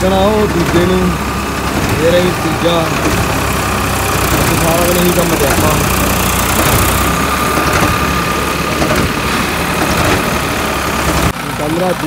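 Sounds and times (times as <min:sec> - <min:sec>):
diesel tractor engines running: 0:00.0 - 0:12.0.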